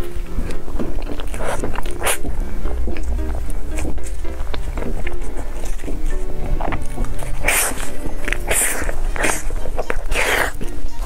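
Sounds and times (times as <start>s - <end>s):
biting into soft cake: 0.0s - 11.0s
quiet background music: 0.0s - 11.0s
wet chewing: 0.0s - 11.0s.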